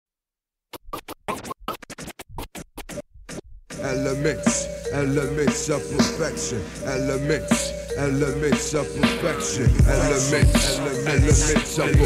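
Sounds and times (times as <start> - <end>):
turntable scratching: 0.7 - 12.0
hip-hop track: 1.3 - 12.0.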